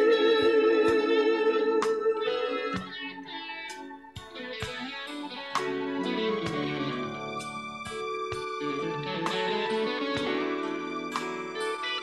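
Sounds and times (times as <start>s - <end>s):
guitar: 0.0s - 12.0s
organ: 0.0s - 12.0s.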